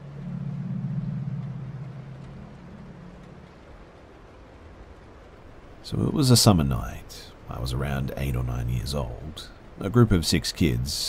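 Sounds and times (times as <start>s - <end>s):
low droning rumble: 0.0s - 6.1s.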